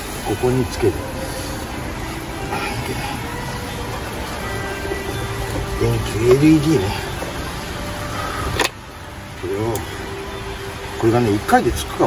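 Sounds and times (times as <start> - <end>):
car tyres hissing on wet road: 0.0 - 12.0.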